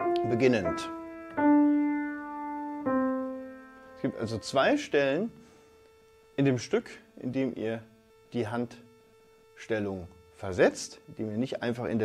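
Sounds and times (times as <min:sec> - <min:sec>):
grand piano notes: 0:00.0 - 0:04.8.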